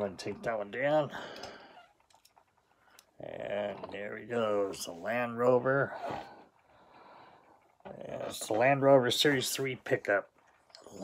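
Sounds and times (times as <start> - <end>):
person speaking: 3.0 - 6.2
soft breath: 5.9 - 7.8.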